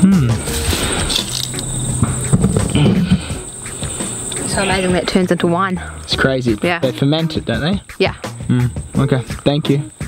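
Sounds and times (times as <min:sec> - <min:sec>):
low muffled sounds: 0:00.0 - 0:06.3
insects chirring: 0:00.0 - 0:10.0.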